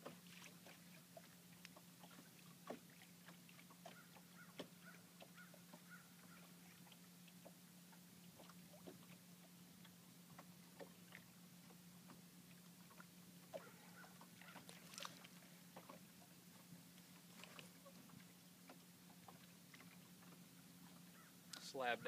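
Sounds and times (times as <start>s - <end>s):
clicks and rustles from landing net: 14.6s - 16.0s.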